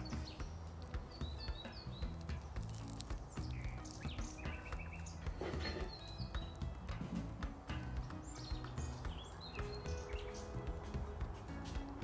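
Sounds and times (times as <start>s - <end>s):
birds chirping: 0.0s - 12.0s
soft background music: 0.0s - 12.0s
crisp fritter crackling when torn: 2.0s - 4.1s
rough rustle: 2.2s - 6.2s.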